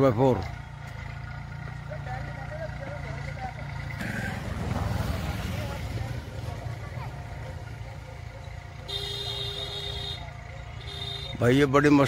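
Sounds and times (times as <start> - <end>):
tractor diesel engines running: 0.0 - 12.0.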